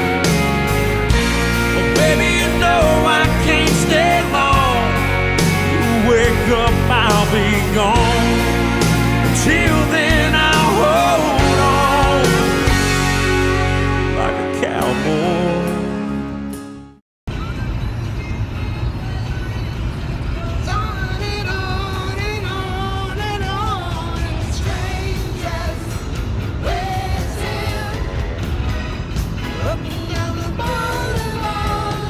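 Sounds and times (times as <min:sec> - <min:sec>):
song playing: 0:00.0 - 0:17.0, 0:24.7 - 0:32.0
man singing along to music: 0:01.3 - 0:16.4, 0:18.2 - 0:28.5, 0:29.4 - 0:32.0.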